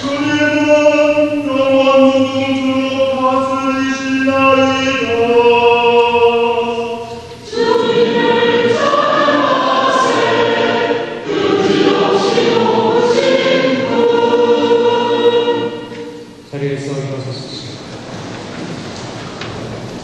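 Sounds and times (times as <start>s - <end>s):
mixed choir singing: 0.0s - 16.4s.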